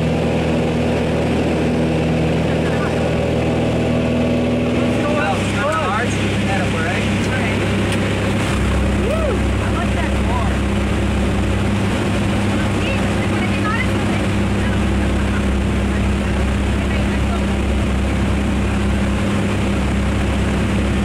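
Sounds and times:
plane engine and propeller drone: 0.0s - 21.0s
rushing wind: 0.0s - 21.0s.

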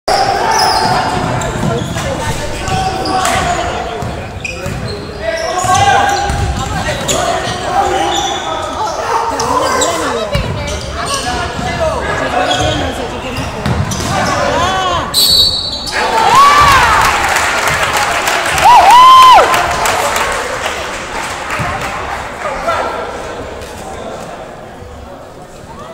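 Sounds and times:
voices echoing in gymnasium: 0.1s - 25.9s.

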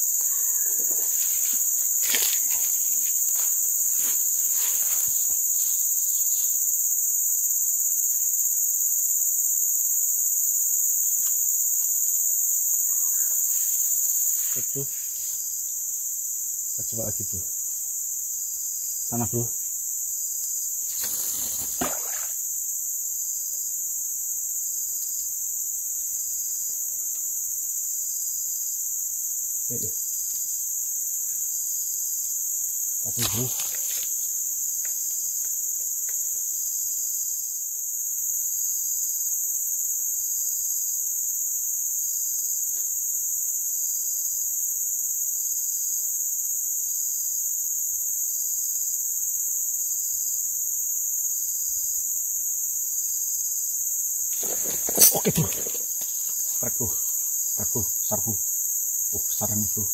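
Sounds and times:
forest insects chorus: 0.0s - 59.9s.

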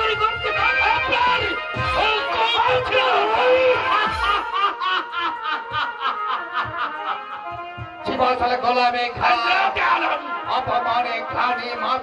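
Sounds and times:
man laughing into microphone: 3.3s - 7.8s.

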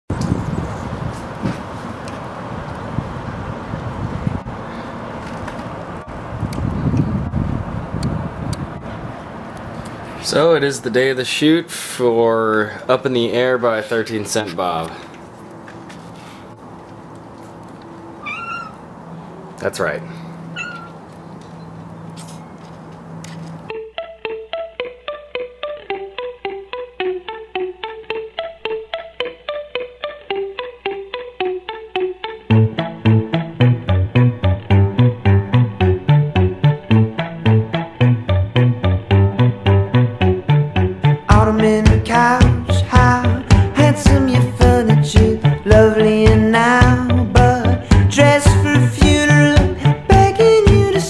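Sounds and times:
wind on microphone: 0.1s - 1.7s, 2.8s - 4.7s, 6.0s - 9.4s
distant traffic rumble: 0.1s - 23.7s
cat meowing: 18.2s - 18.8s, 20.5s - 21.0s
plucked guitar music: 23.7s - 51.0s.

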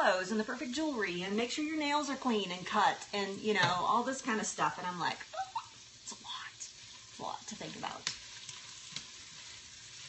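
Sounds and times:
onions sizzling in a pan: 0.0s - 10.0s.

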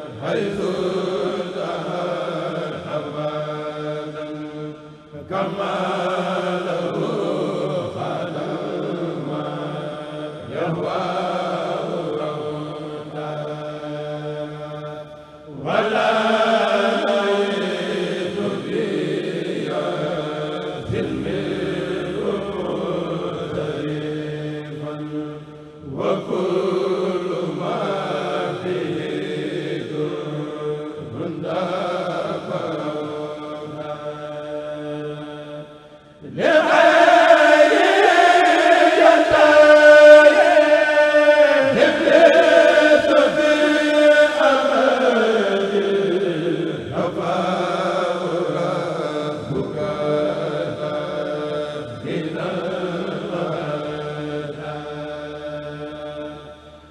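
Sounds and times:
men chanting through a loudspeaker: 0.0s - 56.9s.

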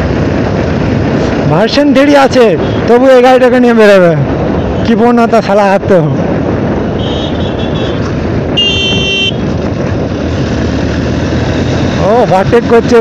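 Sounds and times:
wind and road noise: 0.0s - 13.0s
high-pitched horn beeps: 8.6s - 9.4s.

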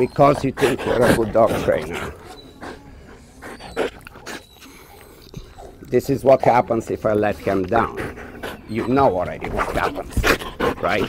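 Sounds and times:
dog breathing hard in huffs: 0.0s - 5.8s, 7.8s - 11.0s.

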